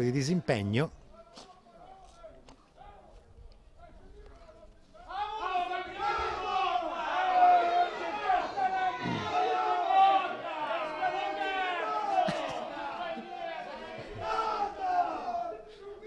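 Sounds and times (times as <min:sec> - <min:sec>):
people shouting: 0:05.0 - 0:16.0.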